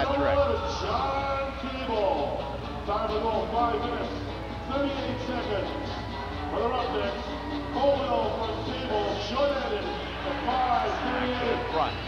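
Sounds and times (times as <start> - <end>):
voice over loudspeakers: 0.0 - 5.9, 6.5 - 12.0
arena music over loudspeakers: 0.0 - 12.0.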